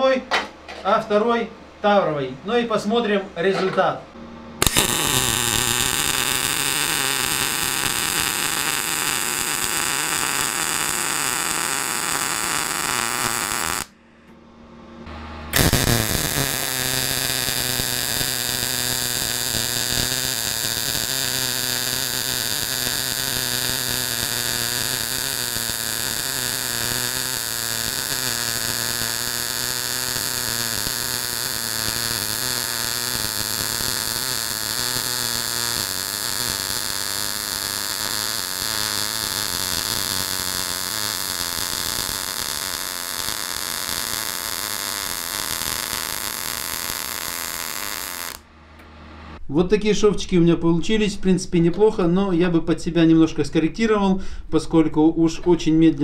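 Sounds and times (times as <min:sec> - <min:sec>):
welding arc: 0:04.6 - 0:14.0, 0:15.5 - 0:48.4.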